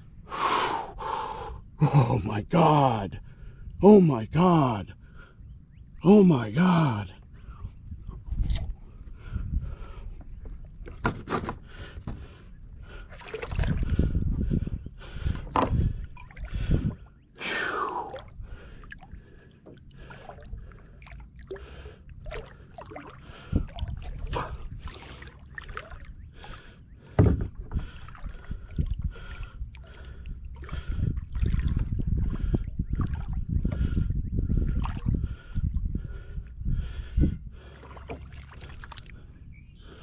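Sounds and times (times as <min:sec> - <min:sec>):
water splashing around kayak: 0:08.4 - 0:36.2, 0:37.6 - 0:40.0
handling bumps and rustling: 0:10.8 - 0:12.2
knocks on kayak: 0:10.9 - 0:12.2, 0:27.2 - 0:27.8
loud thump: 0:27.2 - 0:27.6.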